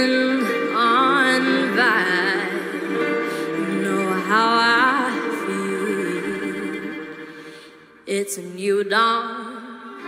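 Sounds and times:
girl singing jazzy ballad: 0:00.0 - 0:02.4, 0:03.5 - 0:06.6.

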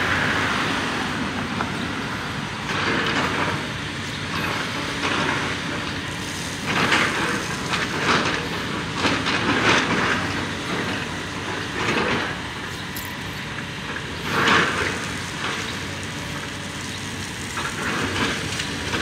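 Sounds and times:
hydraulic excavator running: 0:00.0 - 0:19.0.

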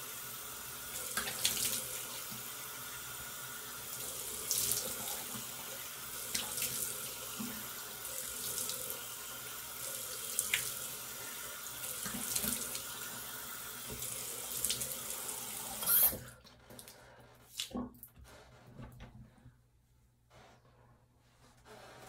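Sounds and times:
sink tap running: 0:00.0 - 0:16.9.

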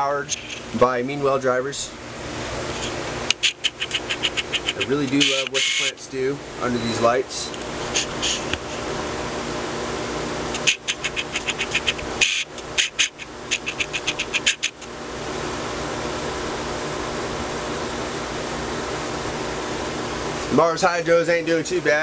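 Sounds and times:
ventilation fans humming: 0:00.0 - 0:22.0
quick sharp clicks: 0:03.3 - 0:05.5, 0:10.5 - 0:14.9.

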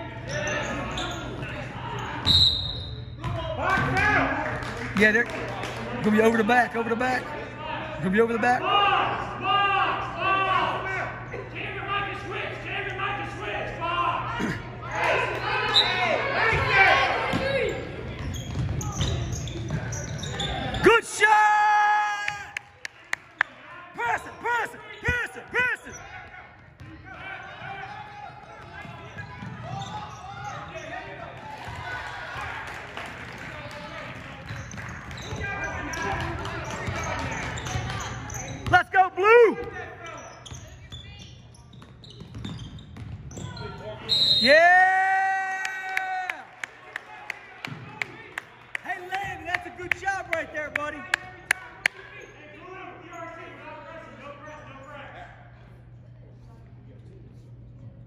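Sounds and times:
voices echoing in a hall: 0:00.0 - 0:58.0
sneakers squeaking: 0:00.1 - 0:04.0, 0:14.4 - 0:20.9, 0:24.2 - 0:32.0, 0:34.3 - 0:44.5, 0:50.8 - 0:56.2
basketball bouncing: 0:41.8 - 0:43.5.

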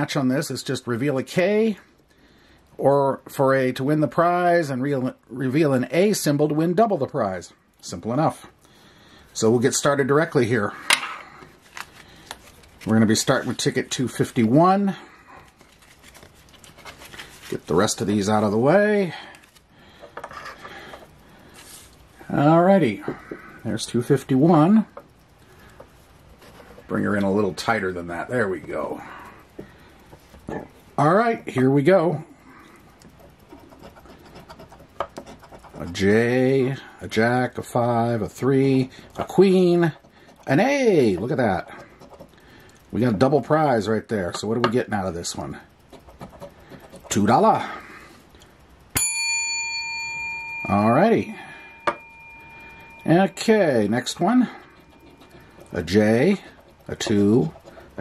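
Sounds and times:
paper rustle: 0:11.6 - 0:13.6, 0:15.4 - 0:18.0, 0:19.3 - 0:19.6
bell-like ringing: 0:49.0 - 0:56.4.

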